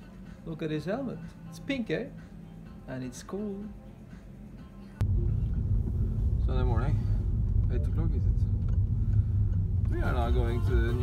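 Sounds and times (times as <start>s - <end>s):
quiet background music: 0.0s - 11.0s
car cabin rumble: 5.0s - 11.0s.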